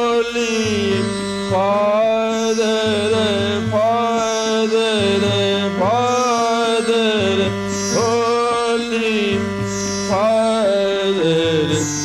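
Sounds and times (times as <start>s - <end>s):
man singing slow devotional song: 0.0s - 12.0s
steady drone accompaniment: 0.0s - 12.0s.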